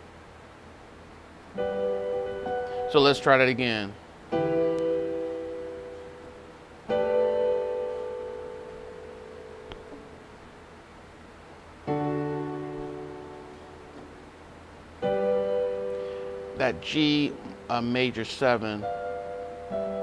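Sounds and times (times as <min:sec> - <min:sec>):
piano chords on digital keyboard: 0:01.5 - 0:10.6, 0:11.8 - 0:20.0.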